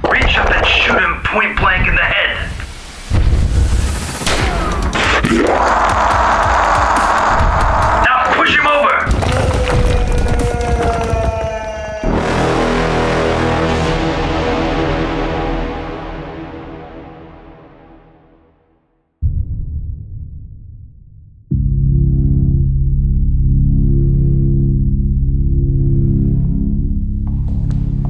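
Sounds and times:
heavy booms and impacts: 0:00.0 - 0:06.6
cries and growls: 0:09.1 - 0:12.4
dark music chord: 0:12.1 - 0:18.6.

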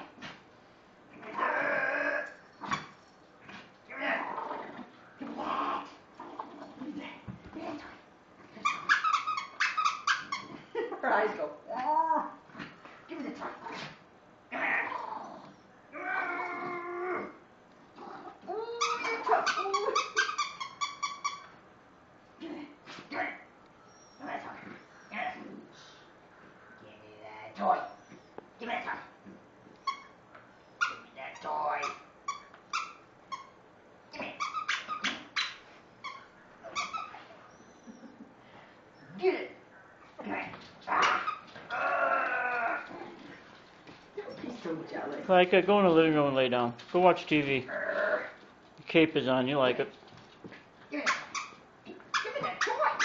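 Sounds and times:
small dog whining: 0:14.5 - 0:17.4, 0:18.1 - 0:21.6, 0:23.8 - 0:25.6, 0:29.8 - 0:38.3, 0:40.1 - 0:43.4.

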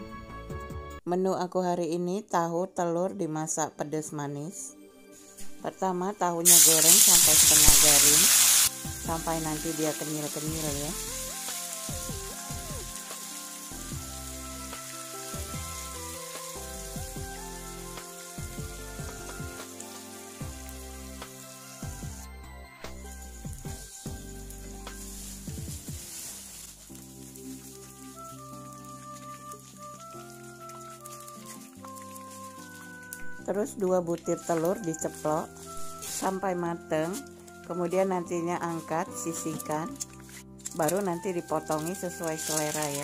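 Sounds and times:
background music with held notes: 0:00.0 - 0:43.0
tofu sizzling in hot oil: 0:06.4 - 0:22.3, 0:23.0 - 0:33.2, 0:39.5 - 0:43.0.

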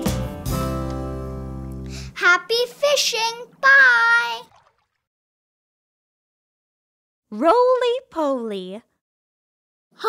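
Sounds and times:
child calling out: 0:03.2 - 0:04.5.

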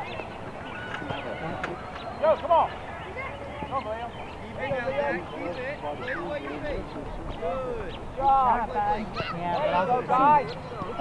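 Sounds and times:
distant voices calling and shouting: 0:00.0 - 0:11.0.

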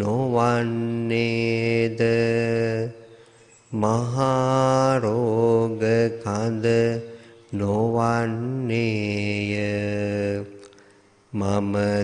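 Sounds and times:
monk chanting in monotone: 0:00.0 - 0:10.7, 0:11.3 - 0:12.0.

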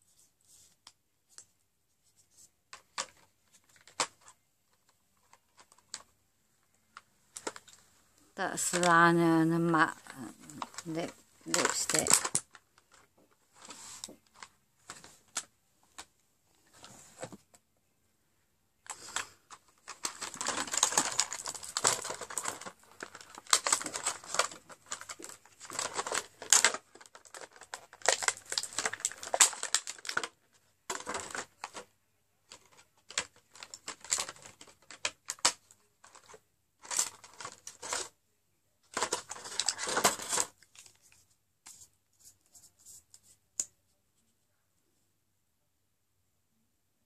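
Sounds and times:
rustling: 0:00.0 - 0:17.6, 0:18.8 - 0:38.2, 0:38.8 - 0:44.4
plastic tubes clicking and rattling: 0:08.4 - 0:16.1, 0:18.9 - 0:38.1, 0:38.9 - 0:41.2.

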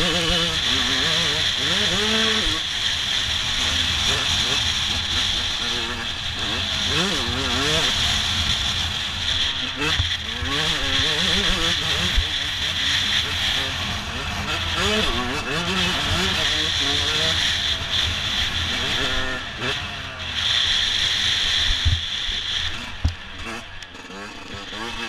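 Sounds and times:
two-stroke motorbike engine revving: 0:00.0 - 0:25.0.

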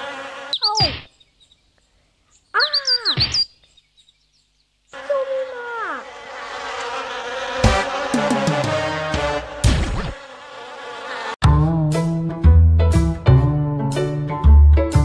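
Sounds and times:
cartoon bird chirps: 0:00.5 - 0:01.2, 0:02.4 - 0:03.6
steady buzzing drone: 0:05.0 - 0:11.4.

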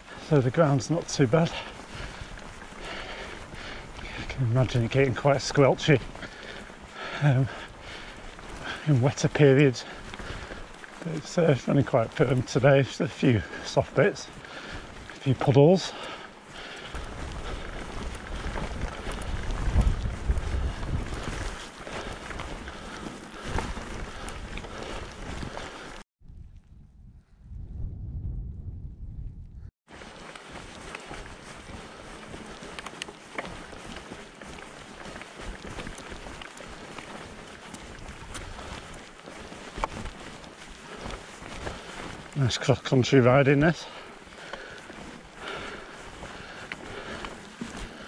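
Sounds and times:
wind buffeting microphone: 0:00.0 - 0:12.6, 0:13.4 - 0:42.4
bike tyre noise on track: 0:00.0 - 0:27.3, 0:28.5 - 0:48.0.

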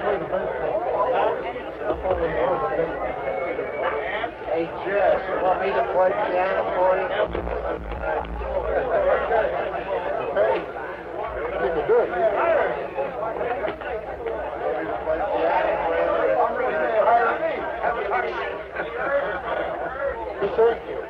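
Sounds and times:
muffled party conversation: 0:00.0 - 0:21.0.

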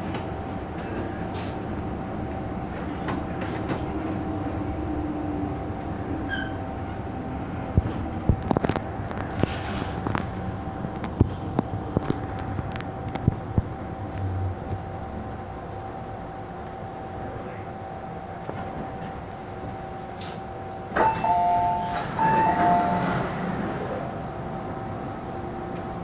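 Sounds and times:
train running rumble: 0:00.0 - 0:26.0.

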